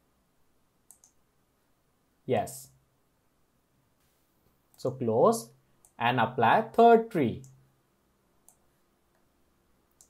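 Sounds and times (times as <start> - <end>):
sharp mouse click: 0.9 - 1.2.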